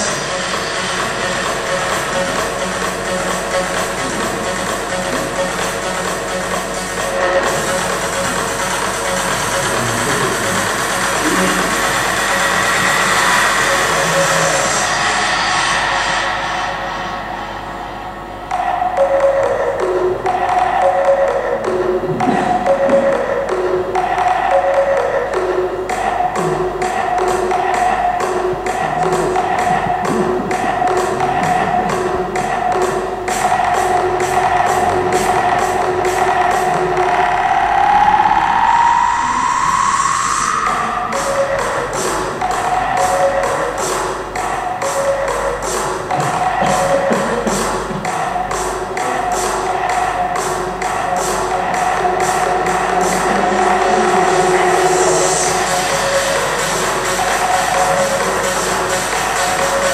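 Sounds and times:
music with ticking beat: 0.0 - 17.2, 18.1 - 38.7, 39.7 - 59.9
rising tone: 0.0 - 43.8, 46.1 - 58.6.

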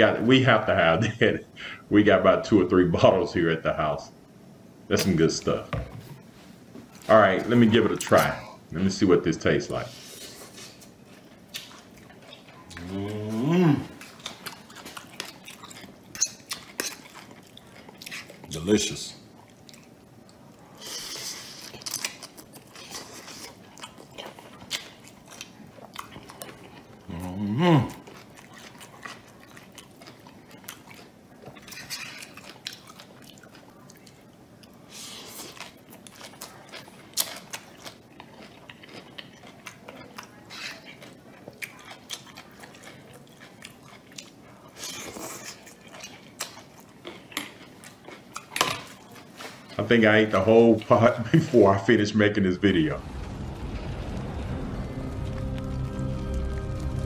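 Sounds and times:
chewing and crunching food: 6.4 - 51.9
person humming approval: 12.7 - 13.9.

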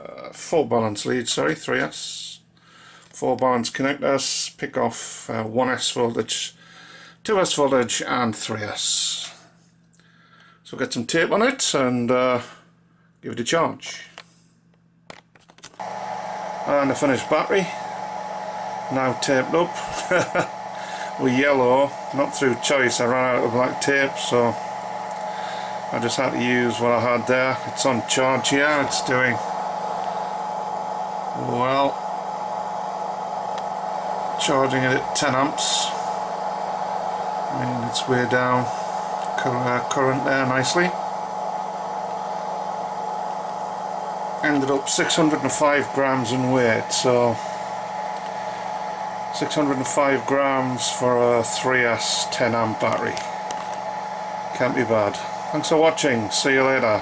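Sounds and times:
battery charger humming and whining: 13.8 - 57.0
fan-like hiss: 15.8 - 57.0.

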